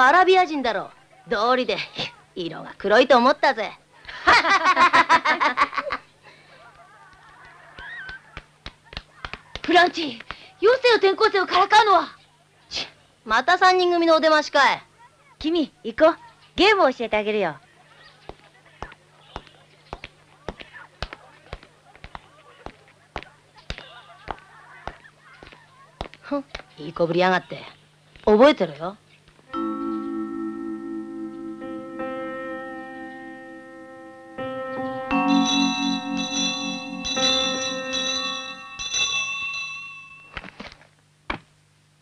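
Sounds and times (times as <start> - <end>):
bell chimes ringing: 29.5 - 40.4.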